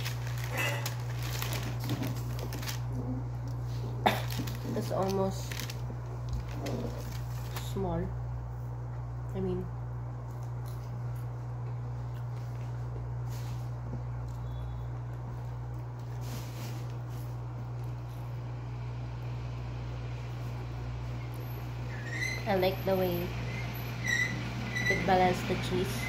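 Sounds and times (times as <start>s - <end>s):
low room hum: 0.0s - 26.0s.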